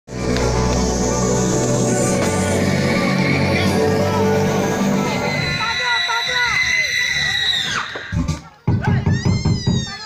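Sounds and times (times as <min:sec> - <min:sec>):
dance music: 0:00.1 - 0:10.0
loud voices calling: 0:00.6 - 0:10.0
high drawn-out shout: 0:03.0 - 0:08.2.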